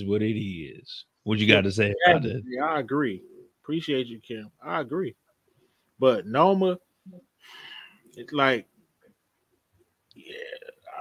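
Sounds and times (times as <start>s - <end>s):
man's throaty low voice: 2.0s - 2.9s.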